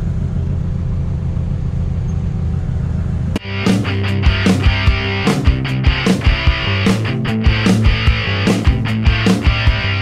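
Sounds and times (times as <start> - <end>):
car engine droning: 0.0 - 10.0
rock music with electric guitar: 3.4 - 10.0.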